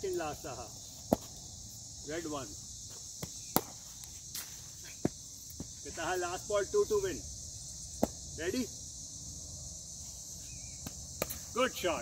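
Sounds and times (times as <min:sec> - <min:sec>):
insects chorus: 0:00.0 - 0:12.0
cricket ball knock: 0:08.0 - 0:08.2.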